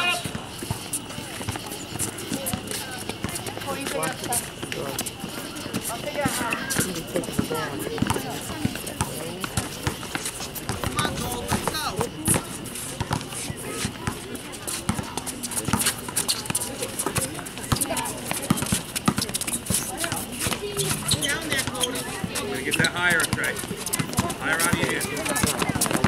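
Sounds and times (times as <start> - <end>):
running footsteps: 0.0 - 26.0
spectators chattering and calling out: 0.0 - 26.0
basketball dribbling on hard court: 8.0 - 12.4, 17.2 - 19.4, 20.0 - 26.0.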